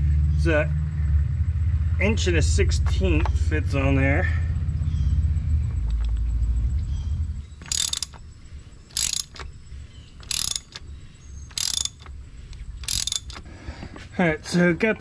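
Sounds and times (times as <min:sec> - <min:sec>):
low rumble: 0:00.0 - 0:07.6
hand ratchet clicking: 0:07.6 - 0:08.2, 0:08.9 - 0:09.6, 0:10.2 - 0:13.5.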